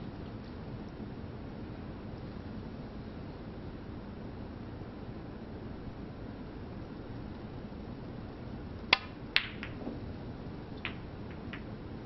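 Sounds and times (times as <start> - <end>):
low hum of quiet hall: 0.0 - 12.0
cue tip striking ball click: 8.9 - 9.9, 10.8 - 11.7
snooker balls clicking together: 9.0 - 10.0, 10.8 - 11.7.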